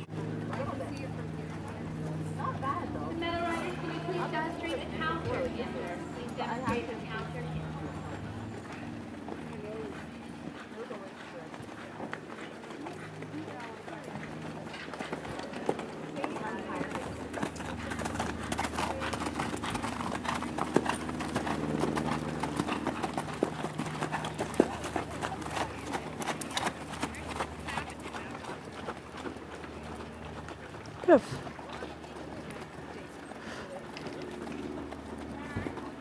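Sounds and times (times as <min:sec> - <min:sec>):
background talk: 0:00.0 - 0:36.0
horse hoofbeats: 0:00.0 - 0:36.0.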